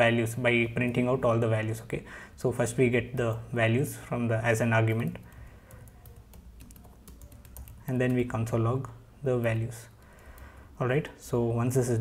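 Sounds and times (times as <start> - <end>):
keyboard typing: 4.9 - 8.5, 9.9 - 10.8.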